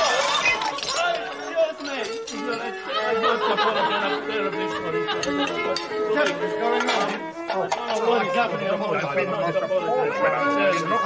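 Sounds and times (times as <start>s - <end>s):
glasses and cutlery clinking: 0.0s - 3.8s, 4.5s - 8.3s
diners chatting: 0.0s - 11.0s
violin playing: 2.4s - 11.0s.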